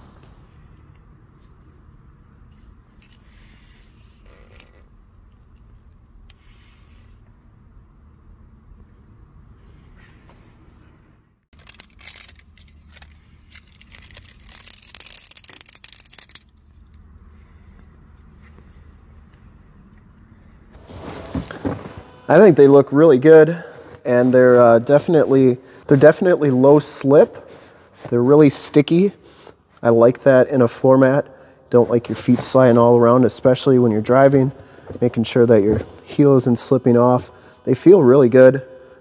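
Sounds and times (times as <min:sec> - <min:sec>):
faint steady hum: 0:00.0 - 0:39.0
scraping on rubber floor mat: 0:20.8 - 0:22.2.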